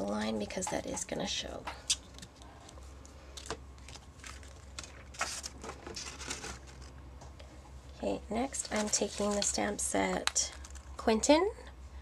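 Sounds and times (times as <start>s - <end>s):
card handling: 3.4s - 7.0s, 8.6s - 9.6s.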